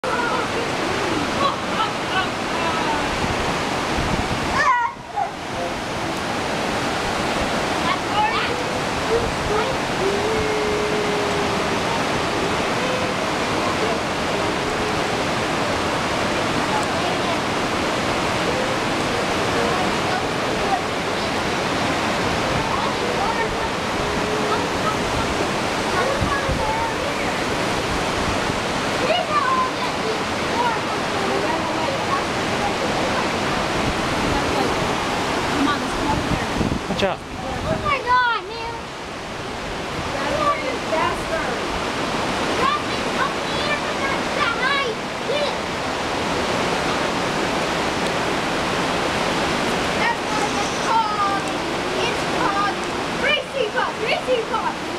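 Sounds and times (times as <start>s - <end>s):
creek rapids: 0.0s - 54.9s
waterfall roaring: 0.0s - 54.9s.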